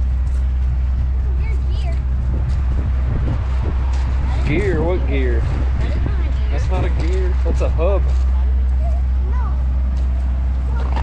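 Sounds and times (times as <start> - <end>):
steady low rumble: 0.0 - 11.0
faint children's voices: 1.2 - 2.3, 8.3 - 9.9, 10.5 - 11.0.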